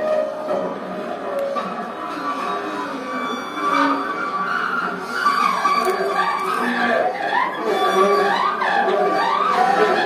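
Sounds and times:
tenor saxophone squealing: 2.4s - 8.5s.

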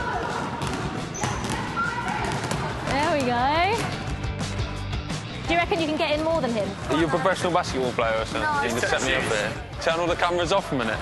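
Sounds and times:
basketballs bouncing on hall floor: 0.0s - 4.4s.

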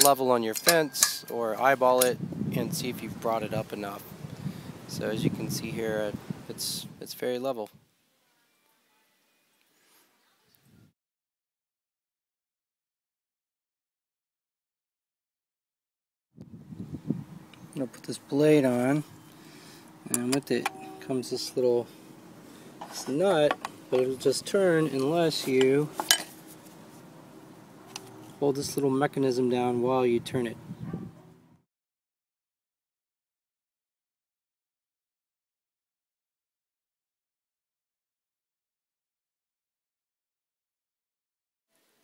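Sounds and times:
sharp metallic clink: 0.0s - 1.4s, 20.2s - 21.5s
faint high tones: 20.1s - 21.9s
faint handling noise: 22.7s - 27.1s.

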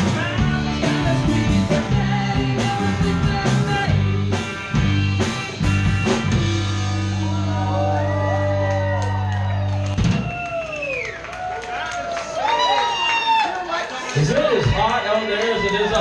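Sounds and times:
live rock band playing: 0.0s - 10.6s
voices shouting and whooping: 7.2s - 16.0s.

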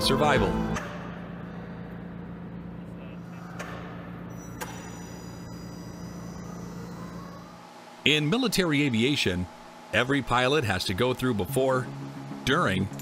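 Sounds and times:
low mechanical hum: 0.0s - 13.0s.

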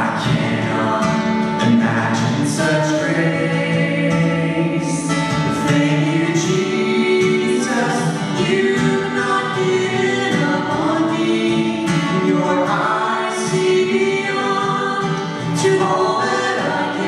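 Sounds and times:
man and woman singing duet: 0.0s - 17.0s
strummed acoustic guitar: 0.0s - 17.0s.

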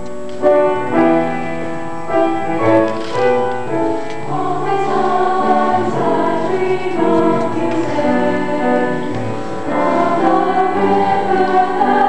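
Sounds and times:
mixed choir singing chords: 0.6s - 12.0s.

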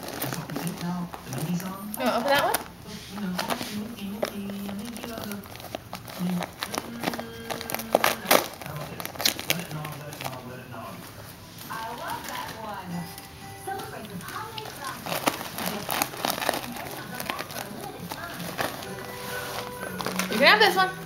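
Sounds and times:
wrapping paper crinkling and tearing: 0.0s - 12.8s, 13.7s - 20.9s.

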